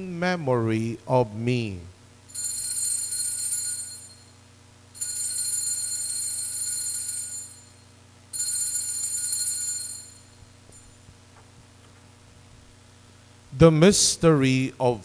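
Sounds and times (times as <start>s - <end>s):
altar bells ringing: 5.0s - 7.8s, 8.4s - 10.9s.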